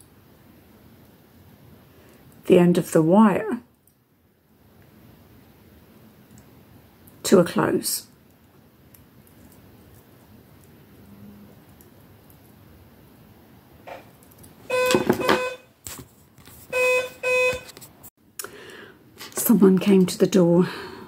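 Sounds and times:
doorbell buzzing: 0:14.7 - 0:15.7, 0:16.7 - 0:17.7.

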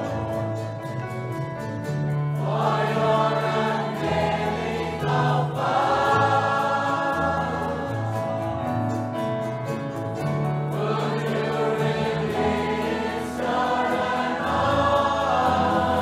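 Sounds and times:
choir singing a hymn: 0:00.0 - 0:01.0, 0:02.3 - 0:09.1, 0:10.2 - 0:16.0
sustained instrumental accompaniment: 0:00.0 - 0:16.0.

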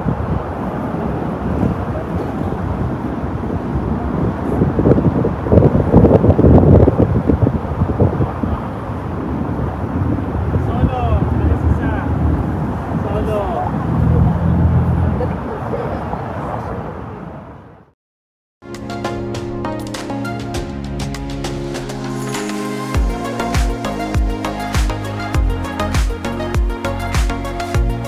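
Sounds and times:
vehicle engine hum: 0:00.0 - 0:17.9
traffic: 0:00.0 - 0:18.0
passers-by talking: 0:12.9 - 0:17.4.

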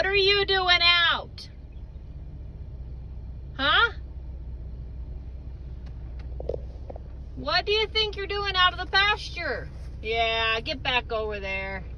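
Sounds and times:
car engine idling: 0:00.0 - 0:11.9.

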